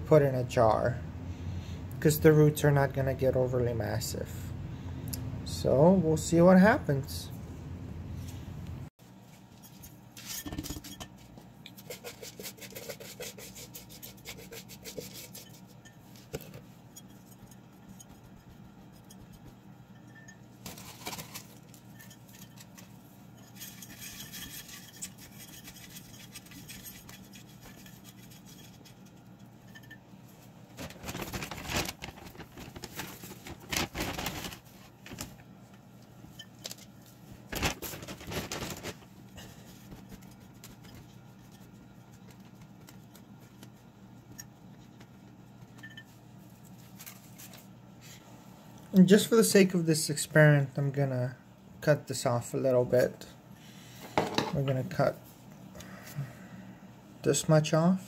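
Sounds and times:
hands rustling potting mix: 0:30.3 - 0:44.2.

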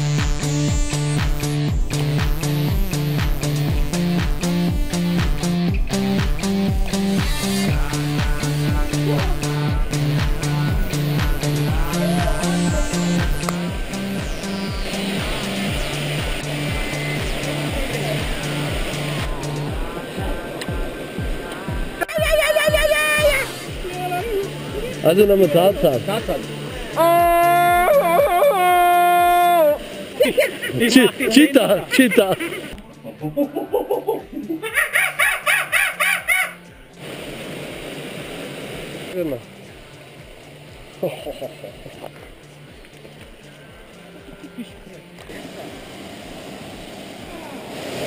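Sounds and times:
background music with steady beat: 0:00.0 - 0:37.1, 0:39.1 - 0:47.1
man making warbling call: 0:07.7 - 0:14.3, 0:22.0 - 0:26.1, 0:26.9 - 0:29.8, 0:33.7 - 0:36.6
stream water rushing over rocks: 0:07.8 - 0:22.2, 0:37.0 - 0:48.0
people laughing: 0:08.8 - 0:09.6, 0:11.6 - 0:13.7, 0:22.0 - 0:26.2, 0:26.9 - 0:36.4, 0:41.0 - 0:42.3, 0:44.0 - 0:45.4.

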